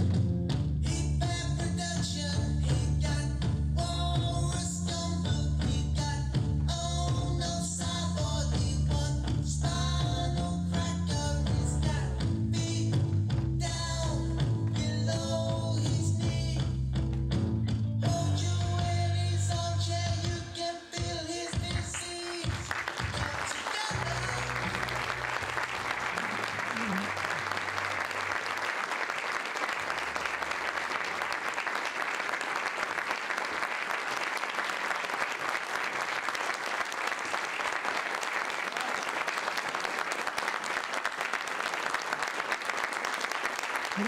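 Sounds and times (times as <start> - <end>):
audience applauding: 21.3 - 44.0
closing music: 23.2 - 28.4.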